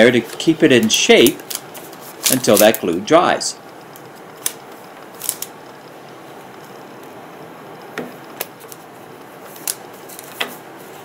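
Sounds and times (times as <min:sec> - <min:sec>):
paper rustling: 0:00.0 - 0:03.0, 0:08.4 - 0:11.0.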